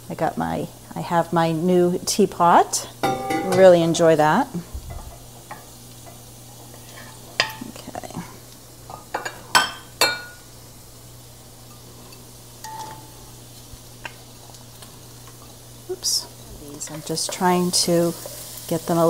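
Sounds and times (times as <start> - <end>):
shallots sizzling: 0.0 - 19.0
steady low hum: 2.7 - 18.3.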